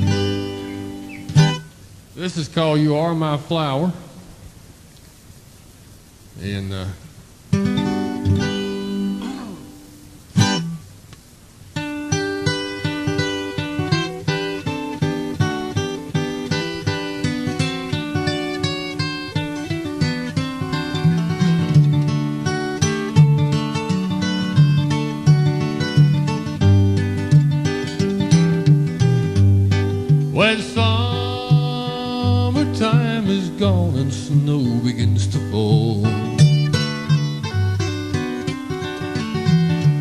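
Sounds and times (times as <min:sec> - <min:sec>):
acoustic guitar strum: 0:00.0 - 0:02.4, 0:07.5 - 0:11.0, 0:11.8 - 0:40.0
picked acoustic guitar: 0:00.0 - 0:04.8, 0:06.0 - 0:40.0.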